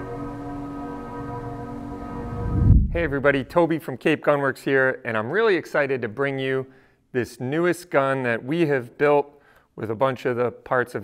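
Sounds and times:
sustained ringing chord: 0:00.0 - 0:03.3.

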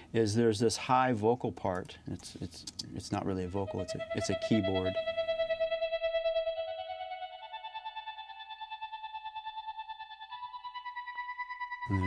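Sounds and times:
synthesizer playing sustained notes: 0:03.3 - 0:12.0
faint low rhythmic pulse: 0:03.4 - 0:08.4.

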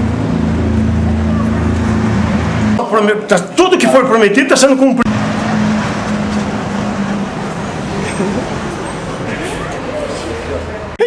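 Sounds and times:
vehicle engine hum: 0:00.0 - 0:11.0
indistinct voices: 0:01.0 - 0:11.0.

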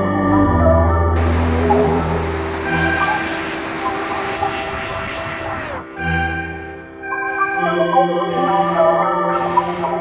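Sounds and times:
rushing hiss-like noise: 0:01.2 - 0:04.8.

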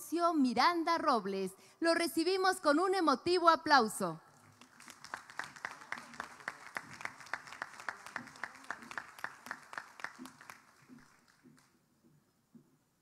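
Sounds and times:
audience applauding: 0:04.4 - 0:11.7
person clapping hands: 0:04.5 - 0:11.7.

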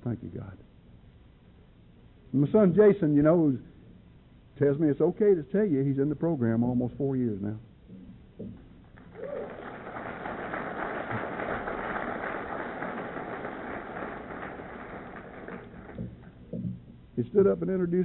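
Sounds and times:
audience applauding: 0:09.0 - 0:16.4.

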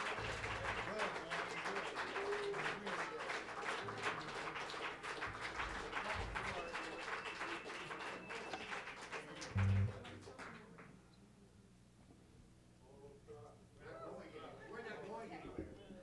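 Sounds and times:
audience applauding: 0:00.0 - 0:10.7
loud low thump: 0:09.6 - 0:10.0.

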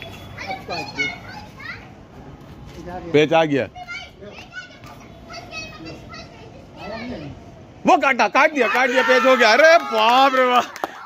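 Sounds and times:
distant children calling out: 0:03.7 - 0:11.0.

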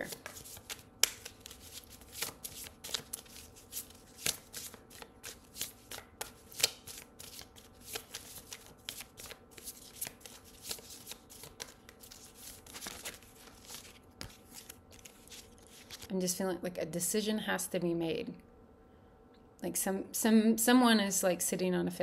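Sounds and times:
cards being shuffled: 0:00.0 - 0:16.1.

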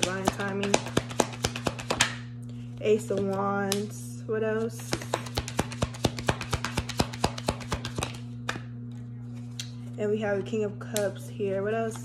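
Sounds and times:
cards being shuffled: 0:00.0 - 0:02.2, 0:04.8 - 0:08.6
steady low hum: 0:00.0 - 0:12.0.

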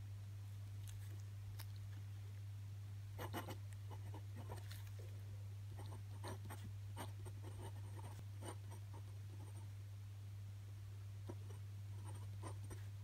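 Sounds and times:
steady low hum: 0:00.0 - 0:13.0
pen scratching on paper: 0:03.2 - 0:04.6, 0:05.8 - 0:09.6, 0:11.3 - 0:12.9.

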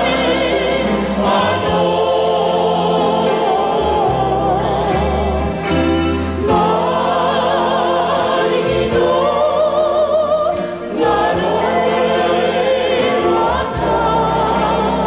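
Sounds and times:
mixed choir singing: 0:00.0 - 0:15.0.

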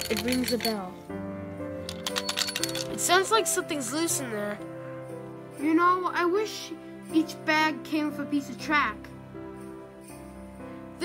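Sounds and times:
toy train rattling and clinking: 0:00.0 - 0:01.0, 0:01.8 - 0:03.4
background music: 0:00.0 - 0:11.0.

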